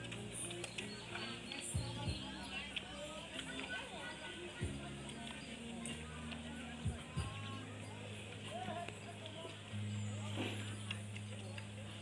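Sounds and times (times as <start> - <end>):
faint voices: 0.0 - 12.0.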